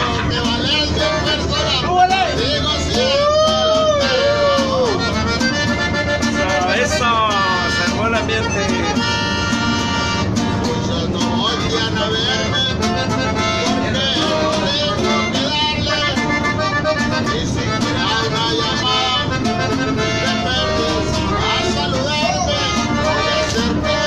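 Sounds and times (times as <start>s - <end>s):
button accordion: 0.0s - 3.2s, 4.0s - 24.0s
strummed guitar: 0.0s - 24.0s
voices: 0.0s - 24.0s.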